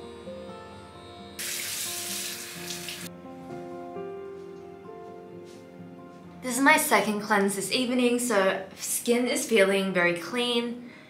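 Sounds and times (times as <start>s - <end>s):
tap water running into sink: 1.4s - 3.1s.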